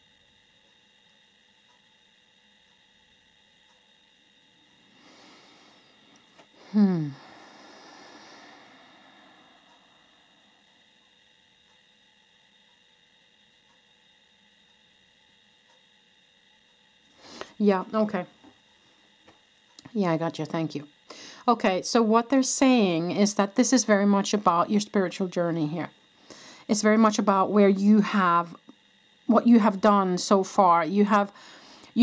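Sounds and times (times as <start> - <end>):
faint steady hum: 0.0 - 32.0
woman breathing in: 4.9 - 10.8, 17.1 - 17.6, 21.1 - 21.5, 26.1 - 26.7, 31.4 - 32.0
woman sighing: 6.6 - 10.1.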